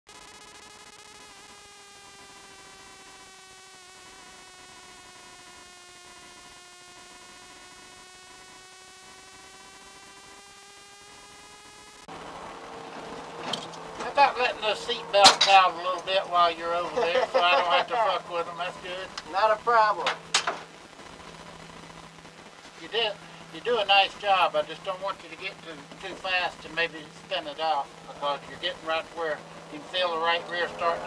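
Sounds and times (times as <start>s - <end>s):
rough in-car noise with hum: 0.1s - 31.0s
car engine droning at high revs: 5.8s - 31.0s.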